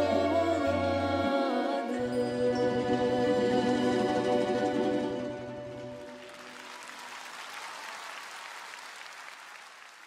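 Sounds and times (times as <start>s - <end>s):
audience applauding: 6.0s - 10.0s.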